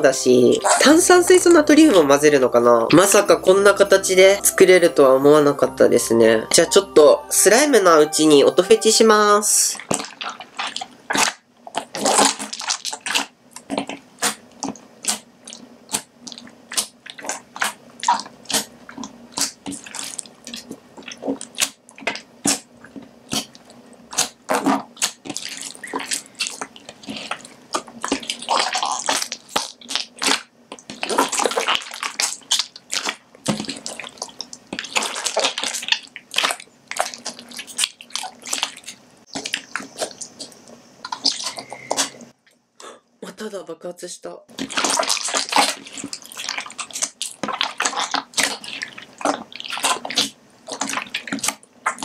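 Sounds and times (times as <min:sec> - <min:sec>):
wet slime squishing: 0:00.0 - 0:05.4, 0:07.5 - 0:42.4, 0:44.5 - 0:52.0
air bubbles popping: 0:09.7 - 0:14.0.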